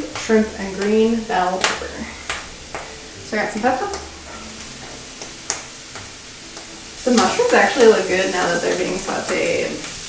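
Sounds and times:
vegetables sizzling in skillet: 0:00.0 - 0:10.0.

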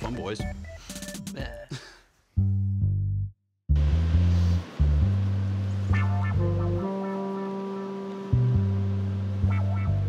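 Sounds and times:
music with low bass line: 0:02.4 - 0:10.0.

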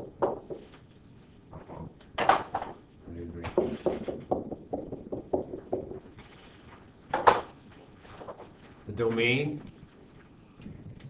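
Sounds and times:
pen tapping on whiteboard: 0:03.6 - 0:06.0.

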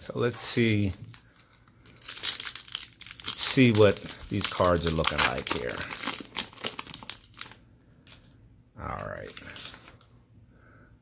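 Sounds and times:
plastic wrapper crinkling: 0:00.0 - 0:10.1.

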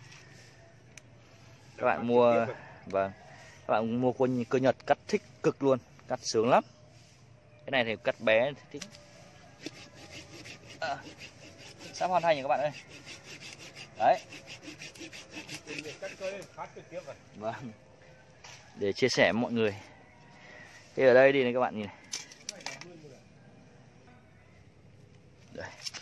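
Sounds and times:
hand saw cutting wood: 0:09.6 - 0:16.5.

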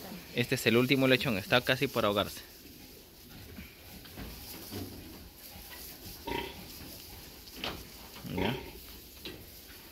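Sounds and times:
pig grunting: 0:08.2 - 0:08.8.

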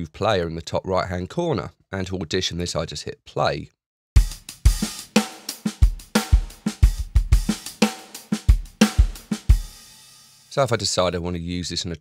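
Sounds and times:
drum kit groove: 0:04.2 - 0:10.6.

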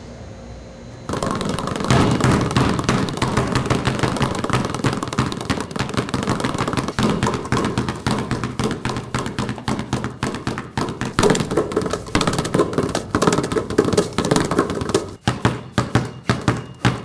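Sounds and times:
fast percussive knocks and thuds: 0:01.1 - 0:17.0.

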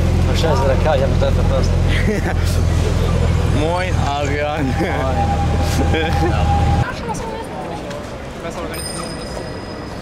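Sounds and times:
traffic rumble: 0:00.0 - 0:10.0
people talking: 0:00.2 - 0:10.0
steady high tone: 0:04.0 - 0:06.9.

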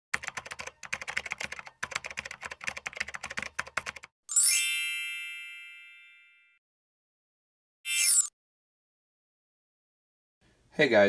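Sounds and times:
keyboard typing clicks: 0:00.2 - 0:04.1
ringing chime: 0:04.3 - 0:06.6.

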